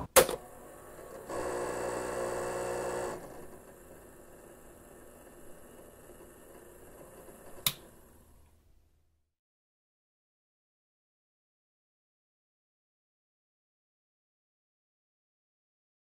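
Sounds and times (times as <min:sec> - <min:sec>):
tape mechanism whirring: 0:00.0 - 0:08.3
tape hiss: 0:00.0 - 0:08.6.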